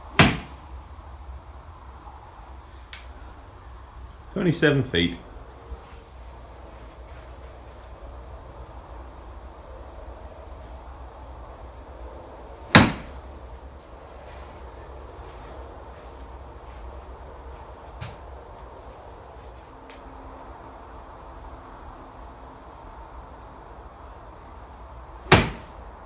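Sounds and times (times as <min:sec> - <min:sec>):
low background noise: 0:00.0 - 0:26.0
golf club striking ball: 0:00.1 - 0:00.6, 0:12.7 - 0:13.2, 0:25.3 - 0:25.8.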